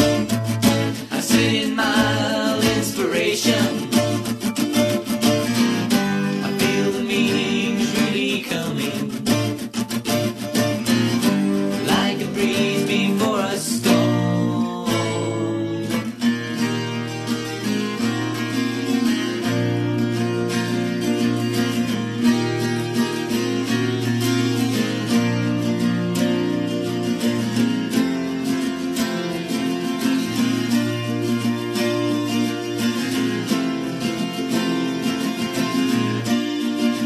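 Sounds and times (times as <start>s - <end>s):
acoustic guitar strumming: 0.0s - 37.0s.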